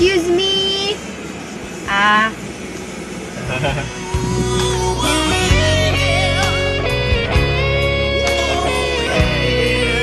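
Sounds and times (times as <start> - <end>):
steady background noise: 0.0 - 10.0
person's drawn-out vocal sound: 3.8 - 6.9.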